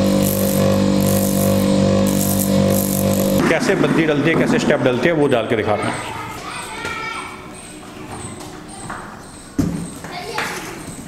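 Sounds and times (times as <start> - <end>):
machine motor hum: 0.0 - 5.6.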